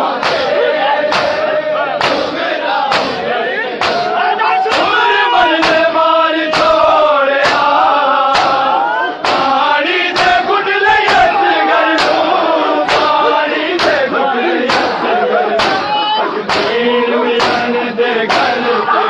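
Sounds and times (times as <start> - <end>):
crowd slapping chests in unison: 0.0 - 19.0
men chanting a lament: 0.0 - 19.0.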